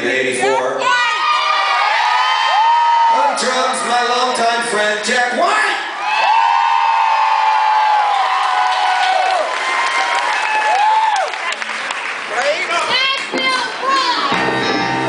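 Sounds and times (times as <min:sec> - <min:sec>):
audience cheering and applauding: 0:01.1 - 0:04.2, 0:06.0 - 0:15.0
rising-and-falling whoop: 0:01.3 - 0:03.2.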